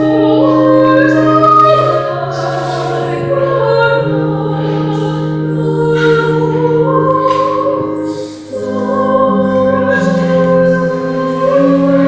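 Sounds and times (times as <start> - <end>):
voices singing church music: 0.0 - 12.0.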